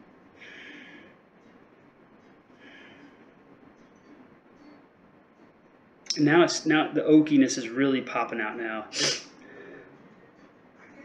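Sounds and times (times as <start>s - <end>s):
man sniffing: 8.9s - 9.3s.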